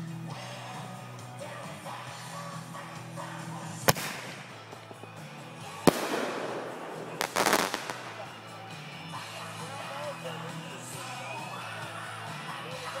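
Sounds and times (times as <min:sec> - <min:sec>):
music: 0:00.0 - 0:13.0
firework bangs: 0:03.9 - 0:04.6, 0:05.9 - 0:08.7
firework crackling: 0:03.9 - 0:04.6, 0:05.8 - 0:08.8.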